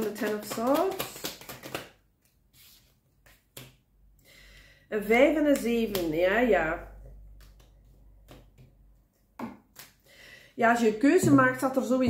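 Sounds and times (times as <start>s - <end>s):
cards tapping and sliding: 0.2s - 2.0s, 2.6s - 3.8s, 7.4s - 8.8s.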